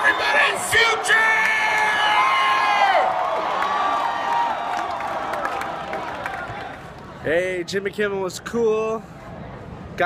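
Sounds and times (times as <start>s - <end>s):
concert crowd cheering: 0.0s - 6.9s.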